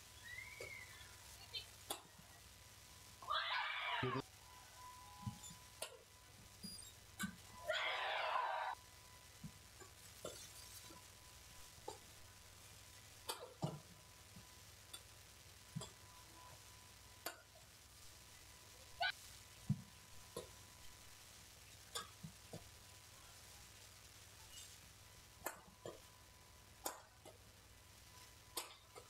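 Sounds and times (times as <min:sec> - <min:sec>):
racket hitting shuttlecock: 0:28.6 - 0:28.8.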